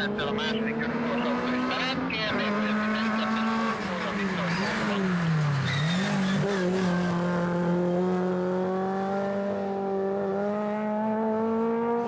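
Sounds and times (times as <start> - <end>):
rally car engine pulling hard: 0.0 - 12.0.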